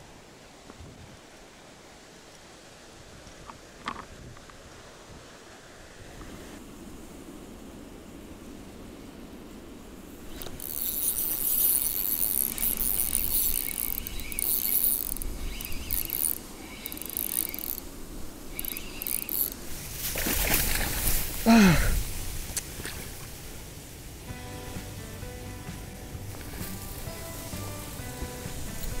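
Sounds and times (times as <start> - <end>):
fishing reel whirring: 10.2 - 19.8.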